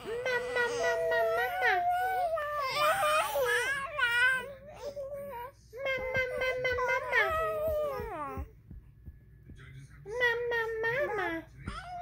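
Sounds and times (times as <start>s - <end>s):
baby vocalizing: 0.0s - 8.5s.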